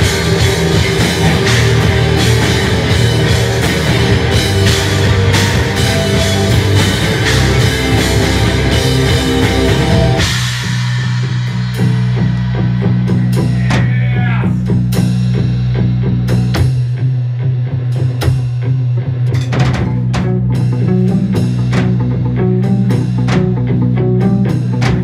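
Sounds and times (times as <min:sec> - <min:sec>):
drum kit playing: 0:00.0 - 0:25.0
low guitar drone: 0:00.0 - 0:25.0.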